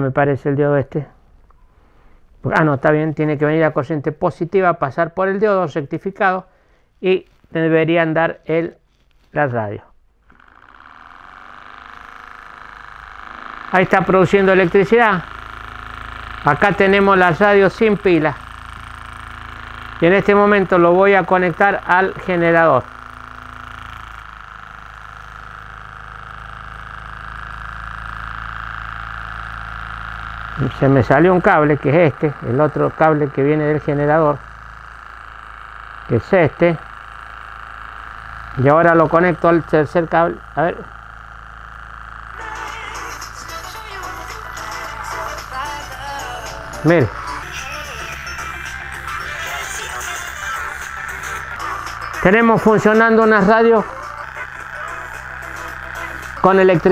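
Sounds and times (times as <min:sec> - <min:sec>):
model engine mechanical hum: 0:01.1 - 0:56.9
radio hiss: 0:11.4 - 0:56.9
radio music: 0:13.2 - 0:24.1, 0:42.4 - 0:56.9.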